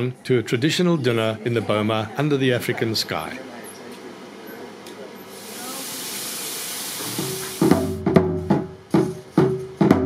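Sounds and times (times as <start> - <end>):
meat sizzling on a grill: 5.3 - 7.7
music with struck percussion: 7.2 - 10.0.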